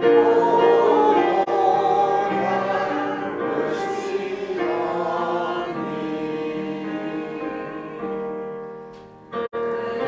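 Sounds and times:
digital piano sustained chords: 0:00.0 - 0:10.0.

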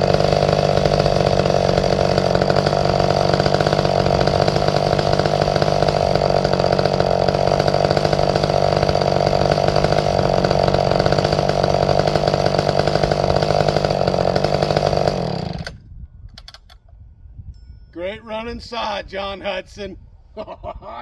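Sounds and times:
chainsaw idling: 0:00.0 - 0:15.8.

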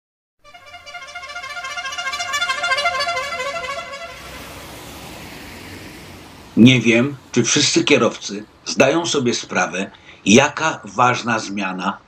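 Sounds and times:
long fluttering horn blast: 0:00.4 - 0:08.4.

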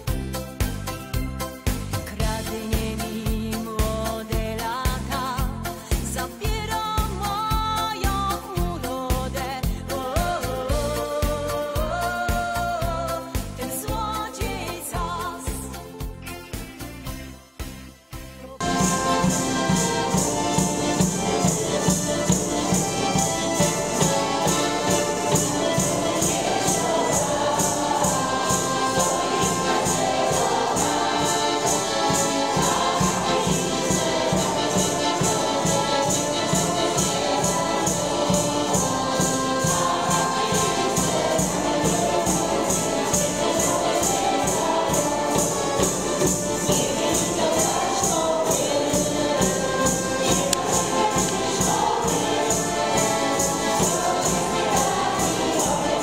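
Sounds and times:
jingling tambourine beat: 0:00.0 - 0:17.4, 0:18.6 - 0:56.0
accordion: 0:00.0 - 0:56.0
instrumental backing: 0:13.4 - 0:56.0
group singing: 0:18.6 - 0:56.0.

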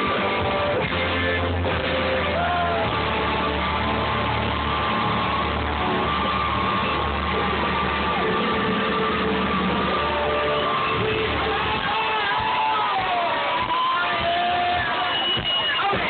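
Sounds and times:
crowd voices: 0:00.0 - 0:16.0
rock band playing live: 0:00.0 - 0:16.0.

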